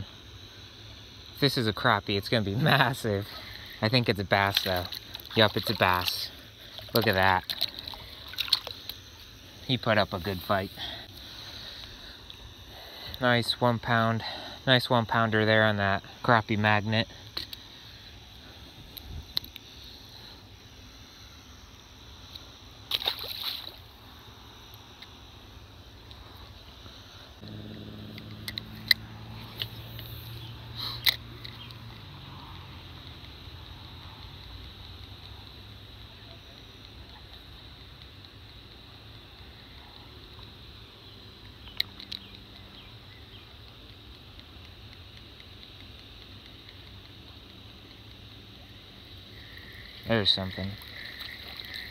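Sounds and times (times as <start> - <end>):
high insect drone: 0.0 - 51.9
low hum: 0.0 - 51.9
short splash: 22.9 - 23.8
sharp clicks: 41.4 - 42.7, 43.3 - 51.9.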